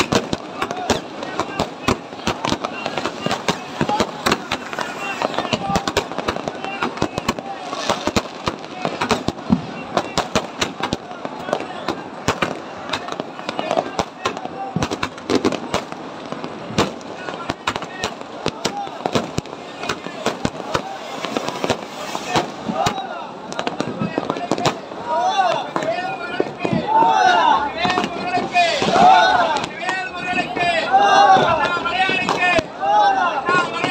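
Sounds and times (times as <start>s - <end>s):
fireworks cracking and popping: 0.0s - 30.8s, 31.4s - 32.8s, 33.4s - 33.9s
continuous crackling din: 0.0s - 33.9s.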